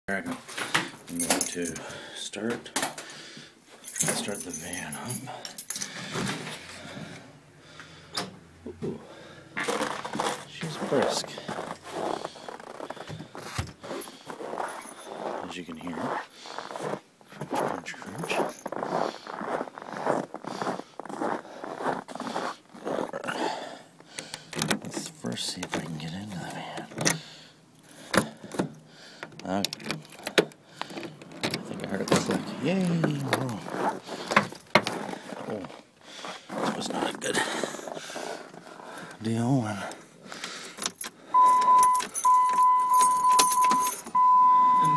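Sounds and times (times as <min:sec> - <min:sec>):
quiet rustling: 0:09.6 - 0:23.2
door opening: 0:24.2 - 0:27.3, 0:28.1 - 0:35.0
handling noise: 0:24.3 - 0:27.2, 0:28.0 - 0:35.8.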